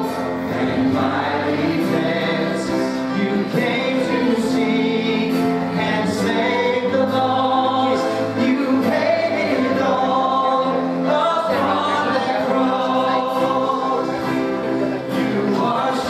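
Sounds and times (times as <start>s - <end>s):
group singing worship song: 0.0s - 16.0s
instrumental accompaniment: 0.0s - 16.0s.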